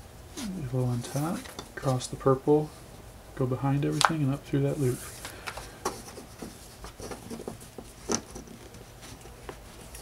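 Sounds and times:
cord rustling and rubbing: 0.3s - 2.2s, 4.0s - 10.0s.

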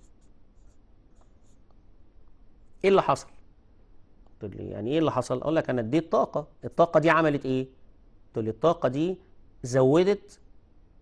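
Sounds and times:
marker writing on paper: 0.0s - 1.7s
man speaking: 2.8s - 3.4s, 4.4s - 7.8s, 8.4s - 10.4s.

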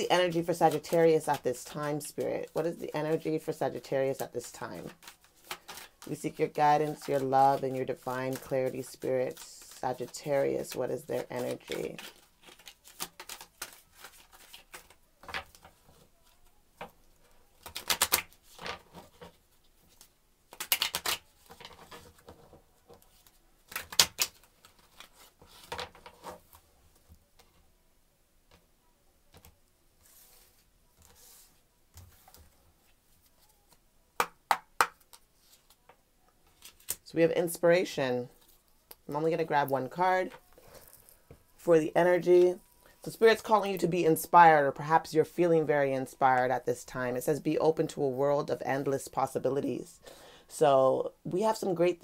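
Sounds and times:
cards riffling: 4.1s - 15.8s, 17.5s - 26.4s.

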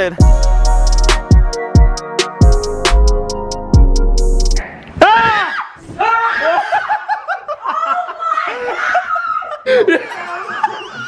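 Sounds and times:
woman laughing: 6.5s - 11.0s.

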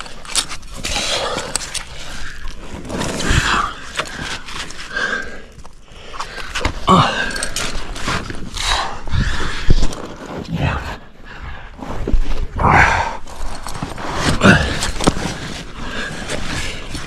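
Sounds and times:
person breathing hard and grunting: 3.2s - 7.8s, 8.6s - 9.9s, 12.5s - 13.4s, 14.2s - 16.9s
low voiced groan: 12.6s - 13.3s.

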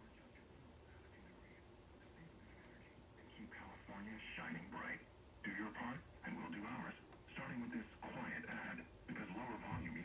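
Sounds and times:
thin voice from radio speaker: 0.0s - 10.0s.

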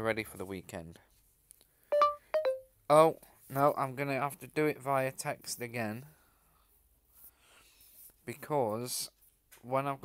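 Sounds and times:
short phone beep: 1.9s - 2.6s
falling two-note chime: 2.0s - 2.6s.

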